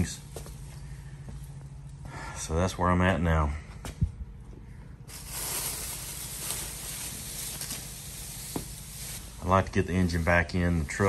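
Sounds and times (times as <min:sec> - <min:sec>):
plastic sheeting crinkling: 0:05.1 - 0:11.0.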